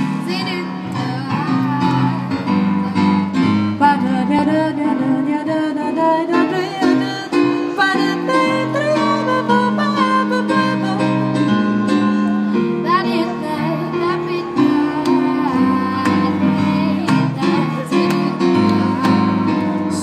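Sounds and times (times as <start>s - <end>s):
woman and girl singing: 0.0s - 11.2s, 12.8s - 20.0s
keyboard chords: 0.0s - 20.0s.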